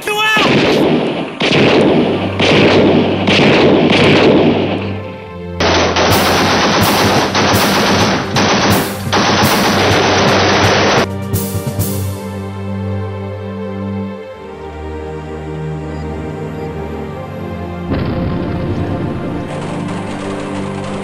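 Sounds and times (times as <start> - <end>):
automatic gunfire bursts: 0.4 - 4.8, 5.6 - 11.1
low droning music score: 0.6 - 21.0.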